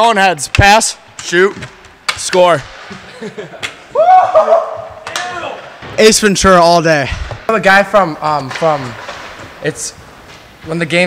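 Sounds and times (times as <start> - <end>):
man laughing: 3.0 - 4.7.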